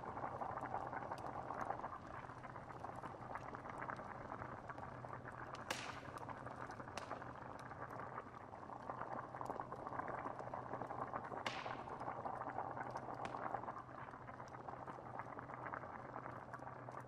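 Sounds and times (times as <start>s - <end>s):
stew bubbling in a pot: 0.0s - 17.0s
sharp pops: 5.6s - 6.3s, 11.4s - 12.2s.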